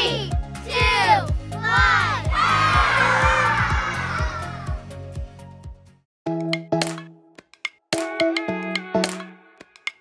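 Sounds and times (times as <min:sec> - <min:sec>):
children counting down: 0:00.0 - 0:04.8
upbeat children's music: 0:00.0 - 0:10.0
children cheering: 0:01.7 - 0:04.9.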